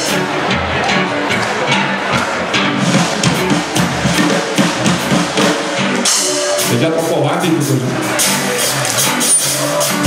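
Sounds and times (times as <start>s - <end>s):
drum kit: 0.0s - 10.0s
electric guitars: 0.0s - 10.0s
keyboard: 0.0s - 10.0s.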